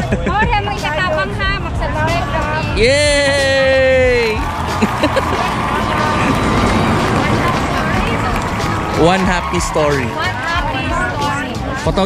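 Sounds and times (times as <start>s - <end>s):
loud background noise: 0.0s - 12.0s
people chattering: 0.0s - 12.0s.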